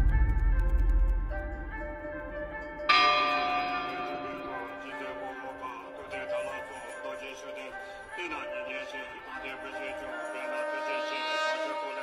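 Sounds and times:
soft sustained music tones: 0:00.0 - 0:12.0
bell ringing: 0:02.0 - 0:12.0.

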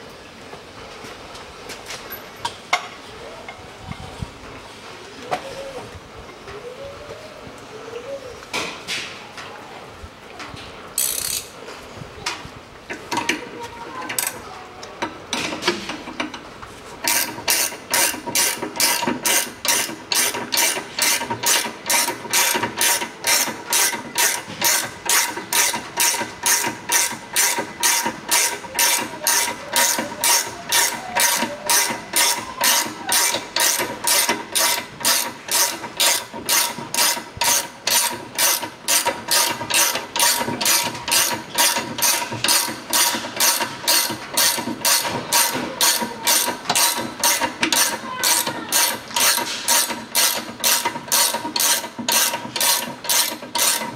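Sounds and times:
ratcheting spanner clicking: 0:11.0 - 0:11.6, 0:17.0 - 0:53.9.

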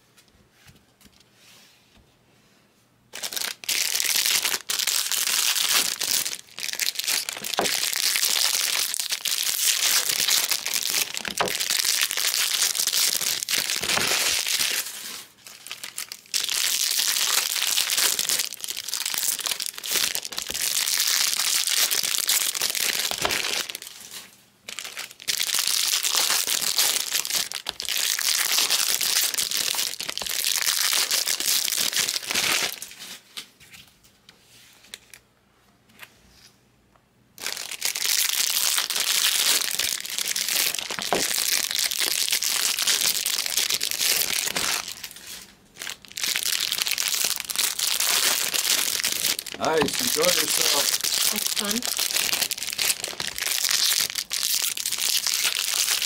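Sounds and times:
foil card packs crinkling: 0:03.2 - 0:33.2, 0:37.4 - 0:56.0.

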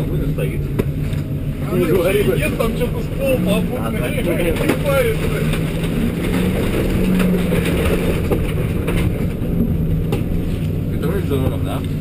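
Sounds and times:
van engine drone: 0:00.0 - 0:12.0
van body knocks and rattles: 0:03.9 - 0:10.5.

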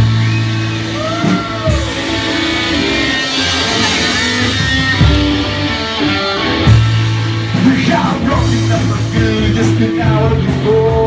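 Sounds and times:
guitar note bending: 0:00.0 - 0:09.2
drum kit: 0:00.0 - 0:11.0
electric guitars: 0:00.0 - 0:11.0
heavy drum hit: 0:00.0 - 0:11.0.

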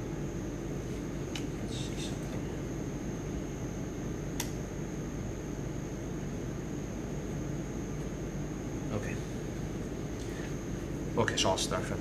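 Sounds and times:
fan hum and hiss: 0:00.0 - 0:12.0.

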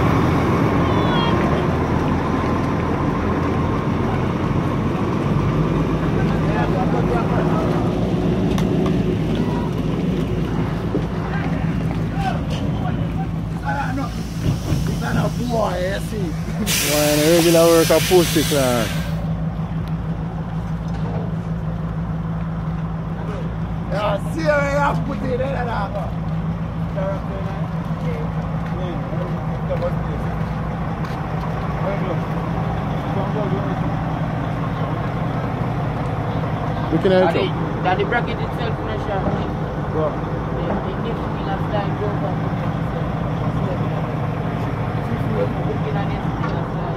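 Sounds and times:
voices: 0:00.0 - 0:20.6, 0:22.8 - 0:46.9
diesel truck engine running: 0:00.0 - 0:46.9.

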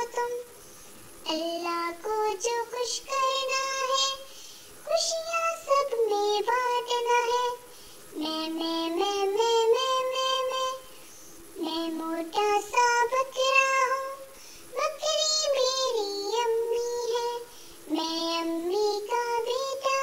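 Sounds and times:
child singing: 0:00.0 - 0:00.6, 0:01.2 - 0:10.9, 0:11.6 - 0:20.0.

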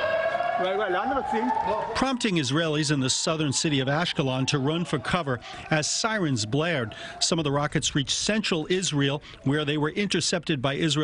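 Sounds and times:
warning siren wailing: 0:00.0 - 0:07.5
people's voices: 0:00.0 - 0:11.0.

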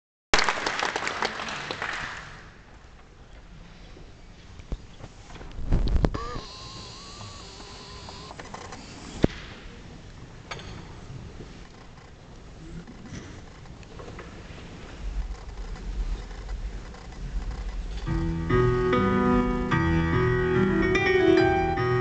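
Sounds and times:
audience applauding: 0:00.4 - 0:02.5.

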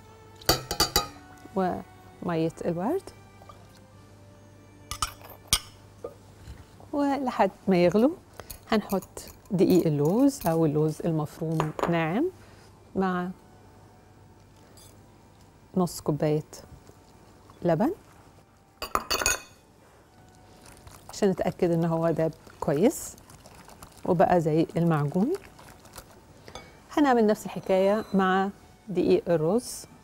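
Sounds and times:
glass jar clinking on metal pot: 0:00.5 - 0:01.2, 0:04.9 - 0:05.7, 0:08.5 - 0:10.7, 0:18.8 - 0:19.6, 0:26.5 - 0:26.8.

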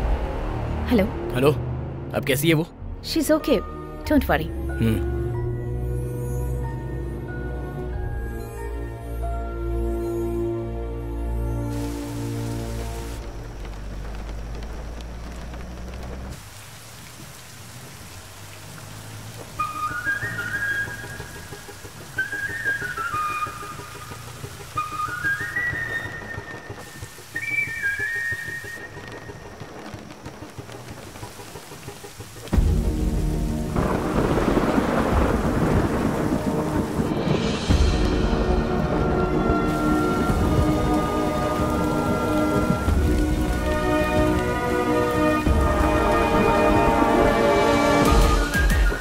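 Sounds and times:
heavy rain on a road: 0:11.4 - 0:49.0
deep rumble of thunder: 0:12.7 - 0:16.4, 0:28.8 - 0:49.0.

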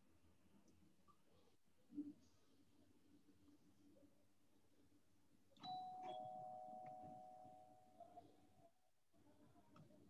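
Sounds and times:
two-note doorbell chime: 0:05.6 - 0:08.2.

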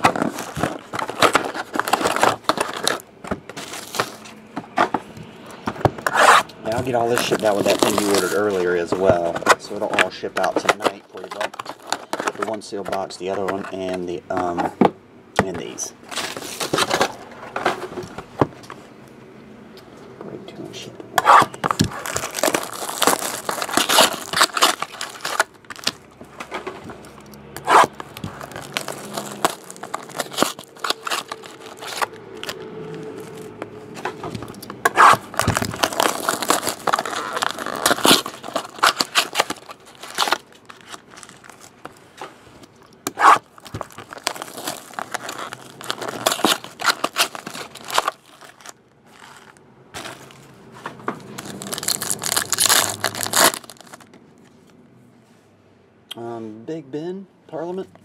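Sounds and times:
foil wrapper tearing and crinkling: 0:00.0 - 0:04.2, 0:06.0 - 0:12.6, 0:21.4 - 0:26.1, 0:27.0 - 0:33.6, 0:34.5 - 0:41.9, 0:43.0 - 0:50.4, 0:51.2 - 0:54.1.

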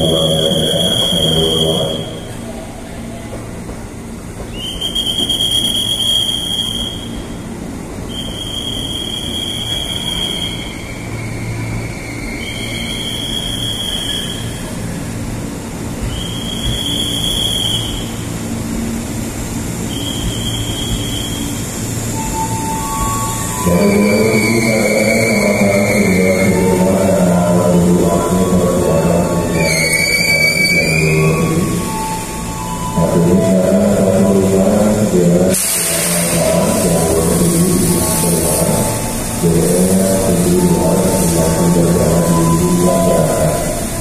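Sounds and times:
train rolling with low rumble: 0:00.0 - 0:44.0
high-pitched squeal: 0:08.1 - 0:14.8, 0:19.8 - 0:44.0.

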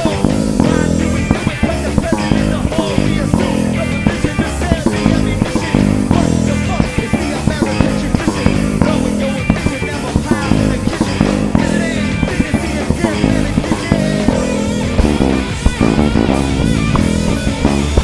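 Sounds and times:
electric bass: 0:00.0 - 0:18.0
guitar: 0:00.0 - 0:18.0
rock drums: 0:00.0 - 0:18.0.

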